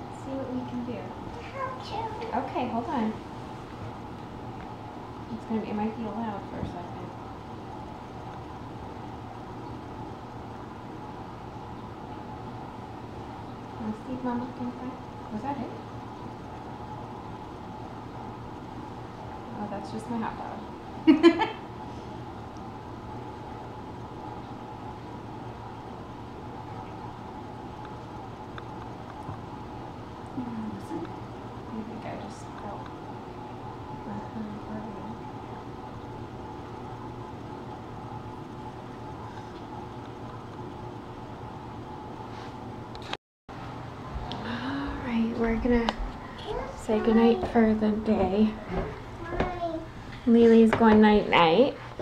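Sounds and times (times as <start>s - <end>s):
steady low hum: 0.0s - 52.0s.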